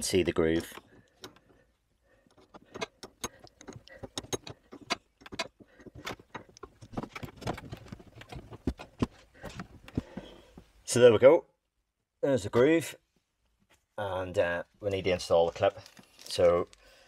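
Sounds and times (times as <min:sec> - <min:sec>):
small clicks and metallic taps: 0:00.2 - 0:10.7.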